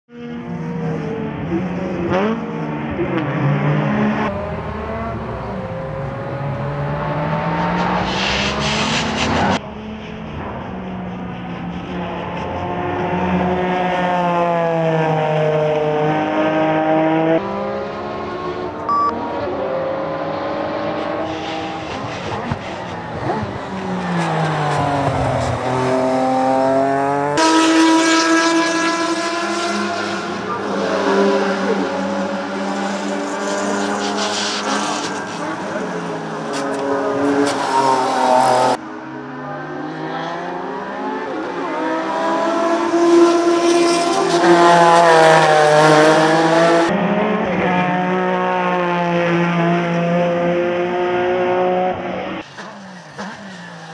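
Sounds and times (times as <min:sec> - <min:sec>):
race car engine revving: 0:00.2 - 0:53.9.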